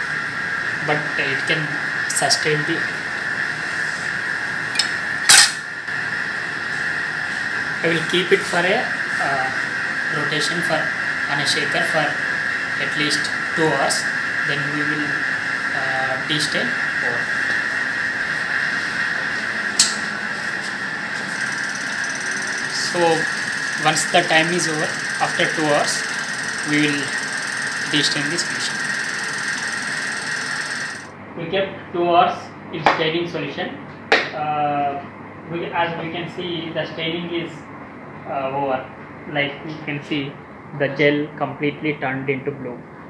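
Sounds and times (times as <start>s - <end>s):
steady high whine: 0.0s - 31.8s
sharp click: 4.8s - 5.6s, 19.8s - 20.0s.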